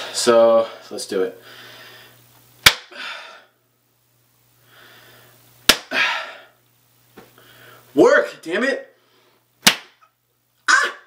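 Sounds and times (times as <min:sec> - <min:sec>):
sharp hand claps: 0:02.6 - 0:02.9, 0:05.7 - 0:05.9, 0:09.6 - 0:10.0.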